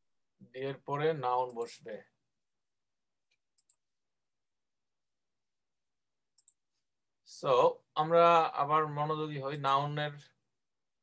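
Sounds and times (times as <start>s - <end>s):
computer mouse clicks: 3.3s - 3.8s, 6.4s - 6.6s.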